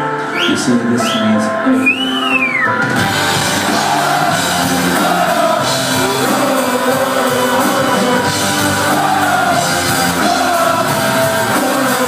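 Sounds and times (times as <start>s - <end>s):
live synth-rock band playing: 0.0s - 12.0s
person singing: 3.5s - 12.0s.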